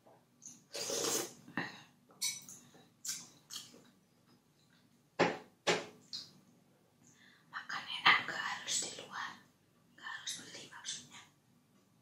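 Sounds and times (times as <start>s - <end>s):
woman whispering: 7.5s - 11.4s.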